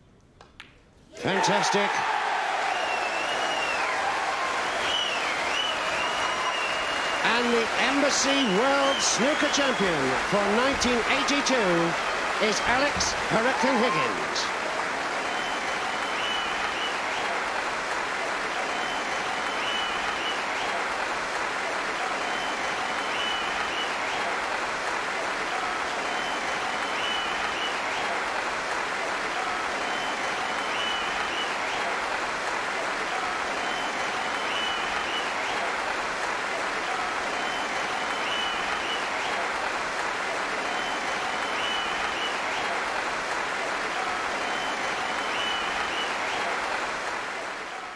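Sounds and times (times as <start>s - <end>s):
large audience applauding: 1.2s - 47.9s.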